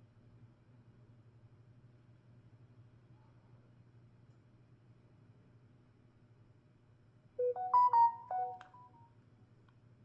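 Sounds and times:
smartphone notification chime: 0:07.4 - 0:08.9.

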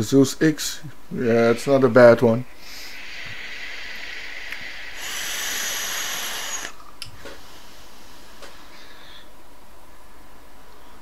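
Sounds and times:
vape hissing and sizzling: 0:02.6 - 0:06.8.

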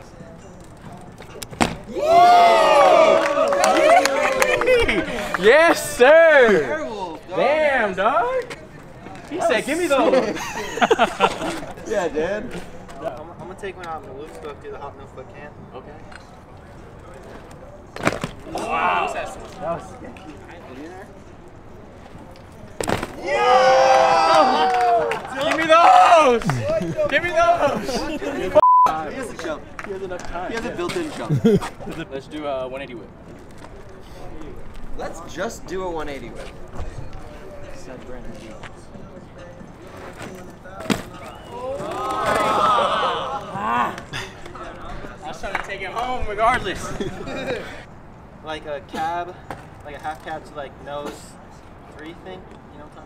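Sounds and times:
onlookers' voices and shouts: 0:01.8 - 0:08.6, 0:18.4 - 0:19.9, 0:23.1 - 0:27.8, 0:41.1 - 0:44.1.

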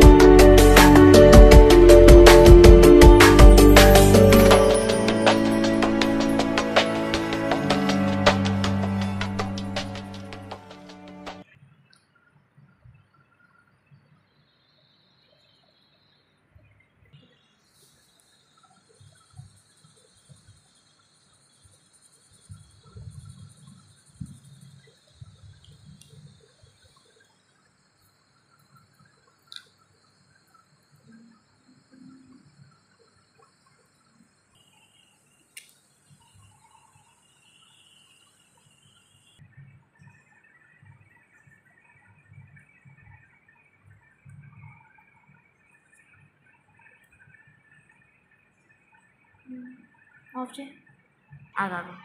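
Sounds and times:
high-pitched background tone: 0:00.0 - 0:11.4.

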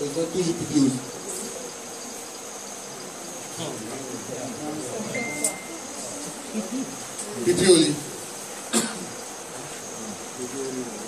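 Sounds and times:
faint murmur of voices: 0:00.0 - 0:11.0
steady high-pitched tone: 0:00.1 - 0:07.2.

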